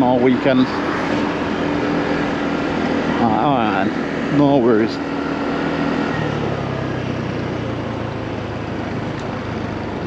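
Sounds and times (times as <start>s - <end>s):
motorcycle engine drone: 0.0s - 10.0s
wind and road noise: 0.0s - 10.0s.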